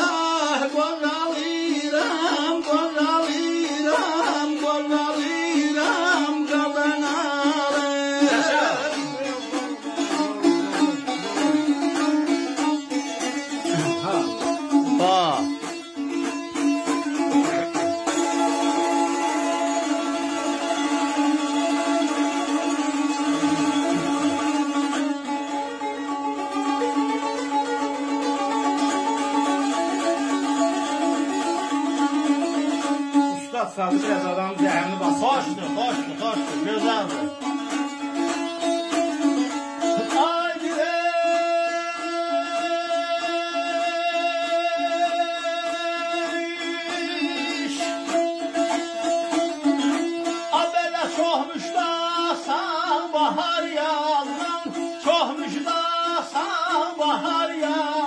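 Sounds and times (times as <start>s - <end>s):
plucked long-necked lute: 0.0s - 58.0s.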